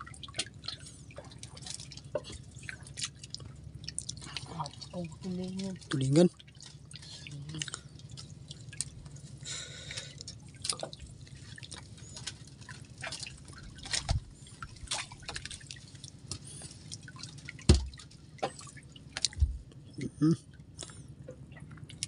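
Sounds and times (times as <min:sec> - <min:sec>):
water dripping and splashing: 0:00.0 - 0:19.8, 0:20.5 - 0:22.0
low steady hum: 0:00.0 - 0:22.0.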